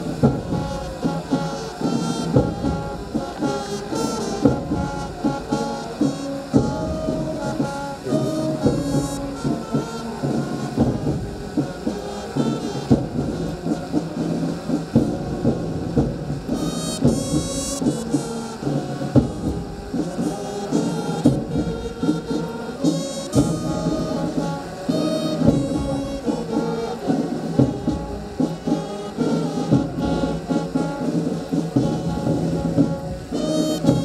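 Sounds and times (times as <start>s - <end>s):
brass band playing: 0.0s - 34.0s.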